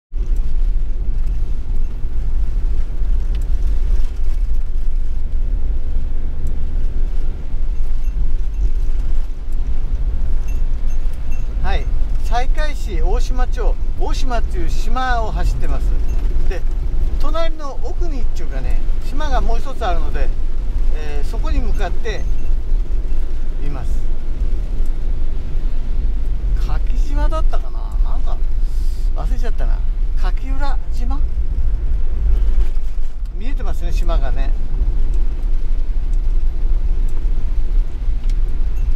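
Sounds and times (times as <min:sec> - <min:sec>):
vehicle engine rumble: 0:00.0 - 0:38.9
tyres on wet road: 0:00.1 - 0:38.9.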